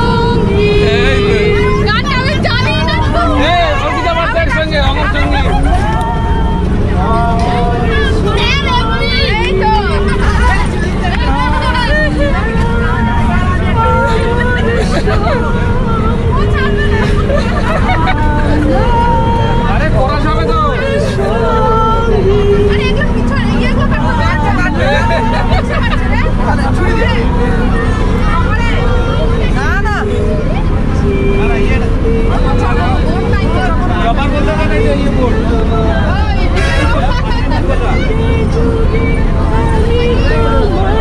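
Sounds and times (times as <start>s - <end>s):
crowd talking and laughing: 0.0s - 41.0s
low rumble of moving bus: 0.0s - 41.0s.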